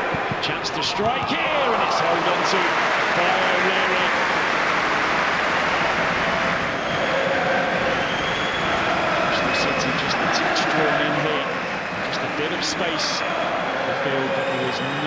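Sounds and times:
crowd din of many voices: 0:00.0 - 0:15.0
crowd shouts: 0:00.0 - 0:15.0.

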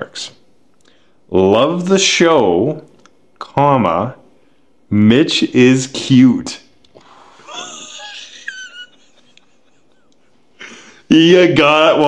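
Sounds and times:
person wheezing laugh: 0:07.2 - 0:08.2.

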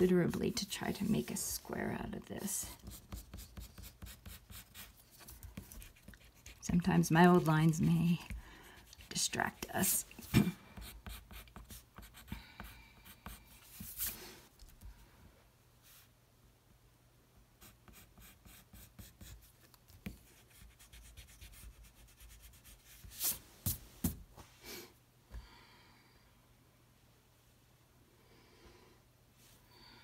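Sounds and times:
pencil scratching on paper: 0:02.4 - 0:14.2, 0:17.6 - 0:23.4.

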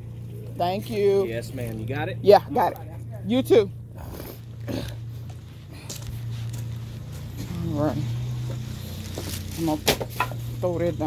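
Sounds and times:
vehicle engine idling: 0:00.0 - 0:11.0.

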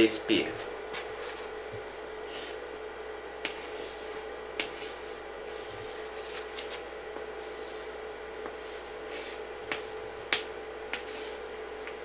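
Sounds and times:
chalk tapping on chalkboard: 0:03.4 - 0:03.7, 0:04.6 - 0:05.0
chalk scratching on chalkboard: 0:03.4 - 0:06.8, 0:10.9 - 0:12.0.

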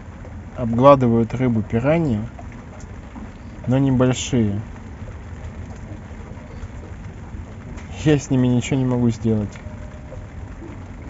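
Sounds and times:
low rumble: 0:00.0 - 0:11.0
steady hiss: 0:00.0 - 0:11.0.

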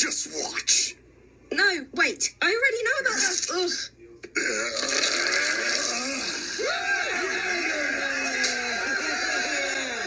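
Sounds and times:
cartoon monster voices grunting and laughing: 0:04.4 - 0:10.0.

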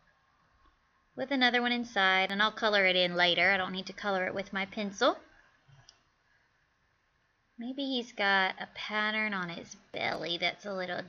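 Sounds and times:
woman speaking: 0:01.2 - 0:05.3, 0:07.6 - 0:11.0.

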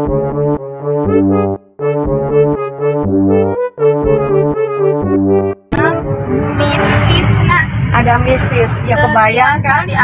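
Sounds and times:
car engine drone: 0:05.1 - 0:10.0
tyres on road: 0:05.7 - 0:10.0.

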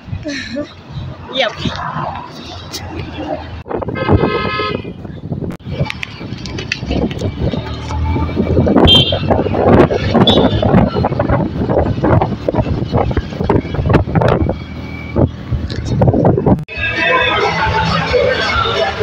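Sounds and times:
vehicle road and wind noise: 0:00.0 - 0:19.0
music: 0:16.7 - 0:19.0.

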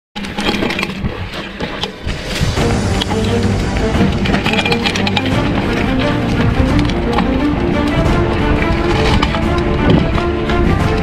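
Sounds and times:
background music: 0:02.1 - 0:11.0.

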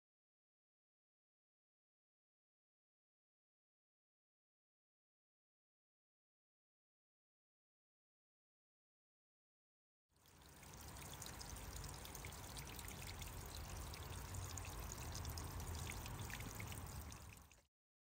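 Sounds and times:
water trickling onto rock: 0:10.2 - 0:17.6.

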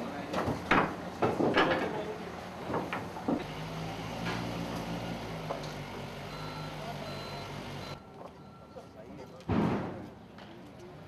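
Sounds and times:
vehicle engine running: 0:03.4 - 0:08.0
reversing alarm beeping: 0:06.3 - 0:09.0.

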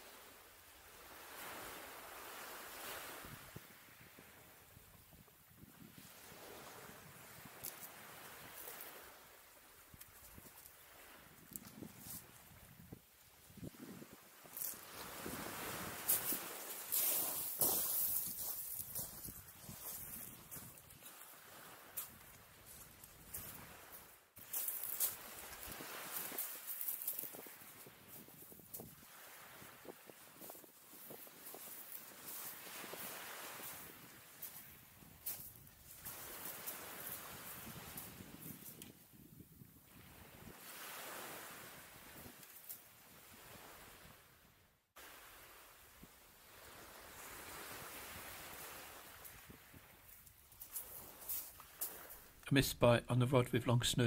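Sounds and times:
wind: 0:00.0 - 0:54.0
waves washing onto shingle: 0:00.8 - 0:04.6, 0:14.0 - 0:38.8, 0:40.2 - 0:44.1, 0:45.0 - 0:52.4
pebbles crunching underfoot: 0:15.7 - 0:21.2, 0:24.4 - 0:28.8.

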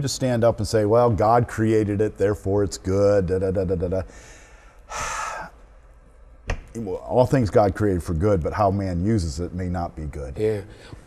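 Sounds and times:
man breathing: 0:04.0 - 0:05.8, 0:10.6 - 0:11.0.

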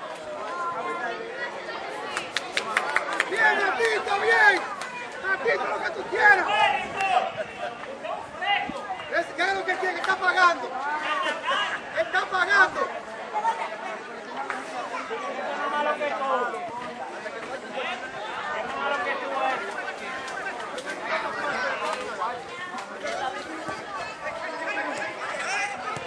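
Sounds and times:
people chattering and calling out: 0:00.0 - 0:26.0.

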